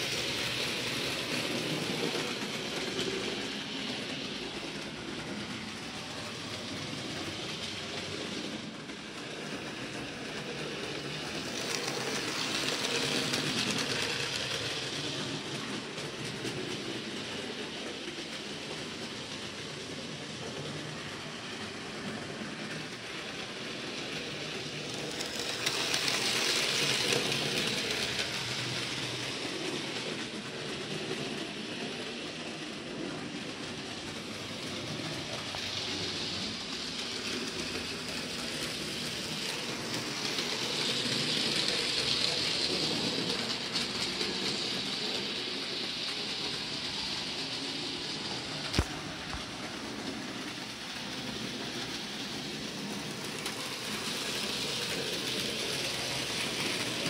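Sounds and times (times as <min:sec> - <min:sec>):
model train whirring rattle: 0:00.0 - 0:57.0.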